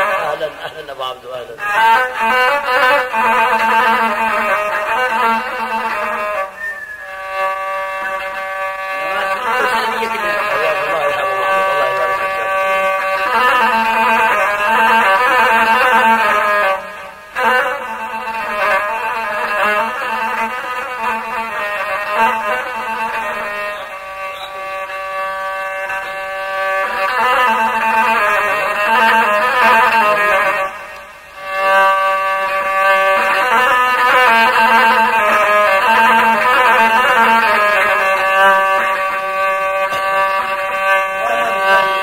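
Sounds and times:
one-string bowed fiddle: 0.0s - 42.0s
long held folk vocal note: 41.0s - 42.0s.

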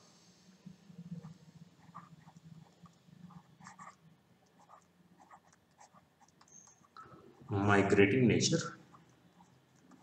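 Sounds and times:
faint low hum: 0.0s - 10.0s
stylus scratching on tablet: 1.0s - 10.0s.

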